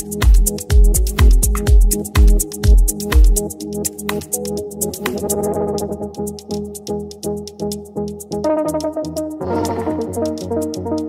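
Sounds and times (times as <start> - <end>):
hi-hat ticks: 0.0 - 11.0
pulsing synth bass: 0.0 - 11.0
held synth chords: 8.3 - 11.0.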